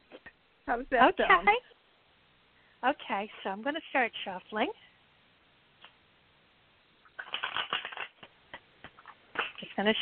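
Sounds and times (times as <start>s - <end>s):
cards being shuffled: 7.2s - 9.7s.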